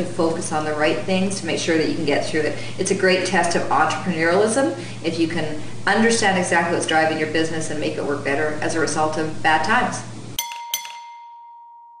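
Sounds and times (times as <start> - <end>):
bell-like chime: 10.4 - 12.0.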